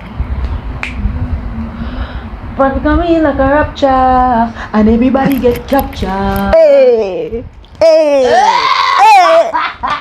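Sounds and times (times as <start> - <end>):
low background rumble: 0.0 - 7.8
finger snap: 0.4 - 1.0.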